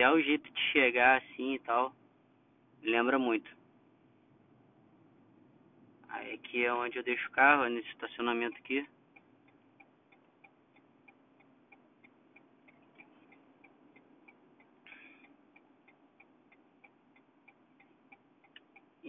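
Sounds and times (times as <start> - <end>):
turn signal ticking: 3.7 - 19.0.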